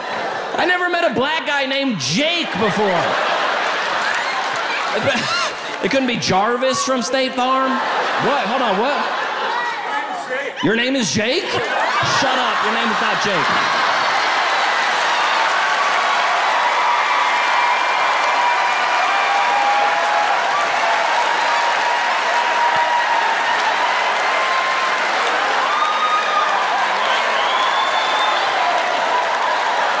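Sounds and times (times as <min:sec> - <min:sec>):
audience applauding: 0:02.3 - 0:06.7, 0:07.5 - 0:10.0, 0:11.6 - 0:30.0.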